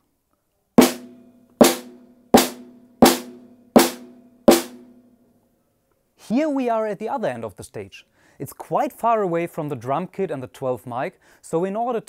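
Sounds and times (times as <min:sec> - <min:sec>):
snare drum hits: 0:00.8 - 0:04.9.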